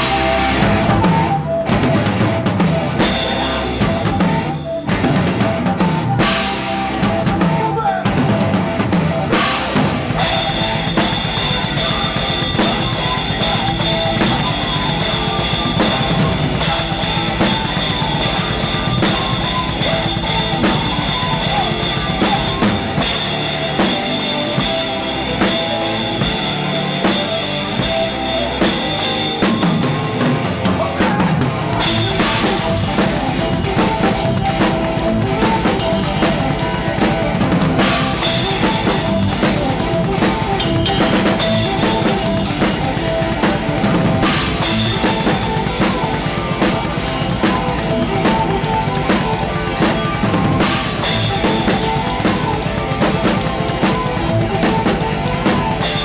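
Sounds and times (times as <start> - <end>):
drum kit beat: 0.0 - 56.0
live band music: 0.0 - 56.0.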